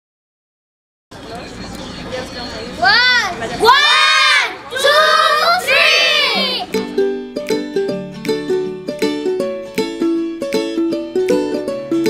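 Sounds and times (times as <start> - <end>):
children shouting in unison: 2.9 - 6.7.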